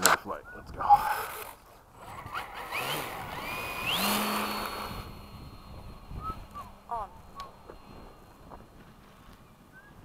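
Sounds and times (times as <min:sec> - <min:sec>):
electric motor and propeller whine: 0:00.8 - 0:10.0.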